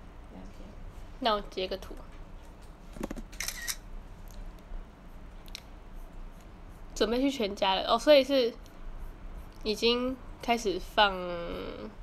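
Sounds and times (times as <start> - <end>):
camera shutter click: 3.4 - 3.8.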